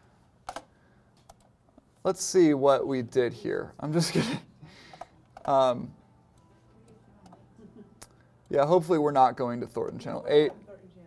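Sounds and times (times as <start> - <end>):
computer keyboard keystrokes: 0.5 - 1.5.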